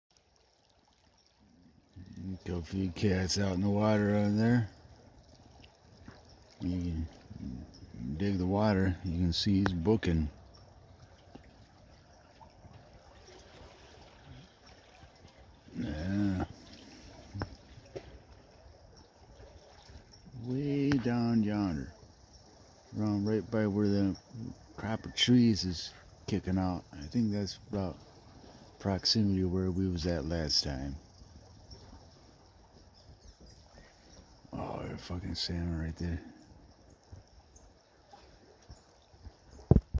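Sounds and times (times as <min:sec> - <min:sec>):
faint outdoor background: 0:00.1 - 0:40.0
flowing river water: 0:00.1 - 0:40.0.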